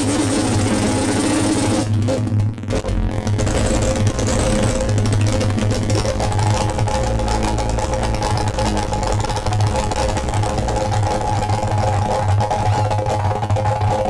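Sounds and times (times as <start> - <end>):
grainy crackle: 0.0 - 14.0
modular synthesizer noisy drone: 0.0 - 14.0
throbbing low pulse: 0.0 - 14.0.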